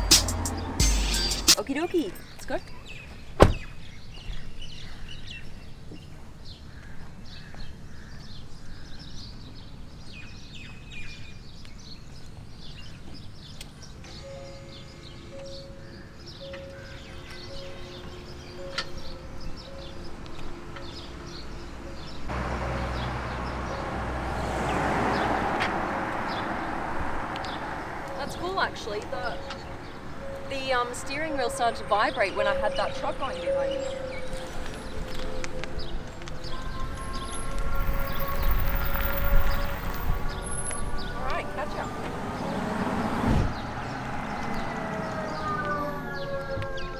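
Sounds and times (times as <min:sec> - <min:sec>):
tyre noise of passing car: 0:00.0 - 0:03.8, 0:13.9 - 0:46.9
birds chirping: 0:00.0 - 0:46.9.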